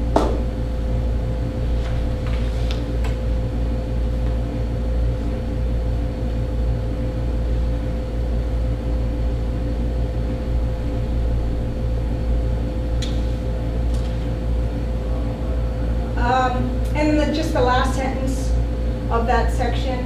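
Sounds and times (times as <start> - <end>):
window air conditioner running: 0.0 - 20.0.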